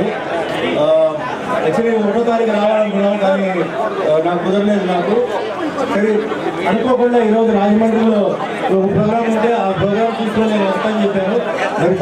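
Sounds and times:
man speaking into microphone: 0.0s - 12.0s.

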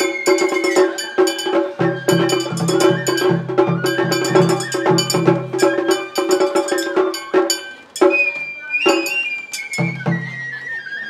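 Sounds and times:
drum strikes: 0.0s - 10.3s
bamboo flute high note: 0.0s - 11.0s.

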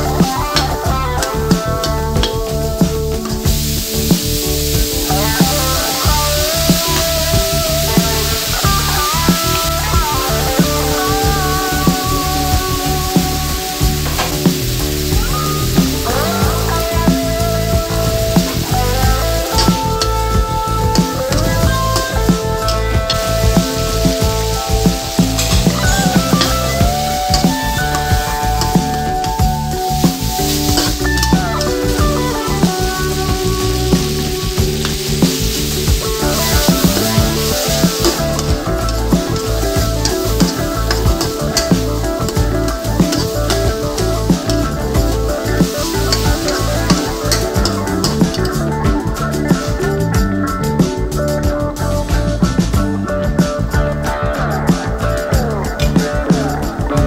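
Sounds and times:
meat sizzling in a wok: 0.0s - 52.5s
background music: 0.0s - 57.0s.

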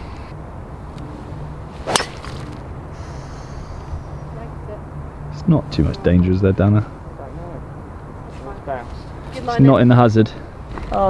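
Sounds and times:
golf club striking ball: 1.8s - 2.7s.

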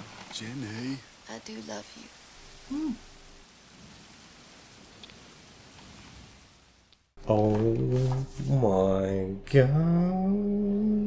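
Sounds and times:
faint steady rain: 0.0s - 11.0s.

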